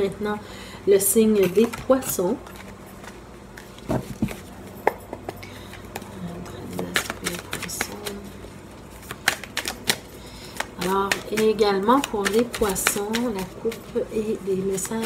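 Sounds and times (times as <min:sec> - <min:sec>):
cards being shuffled: 0:05.6 - 0:15.0.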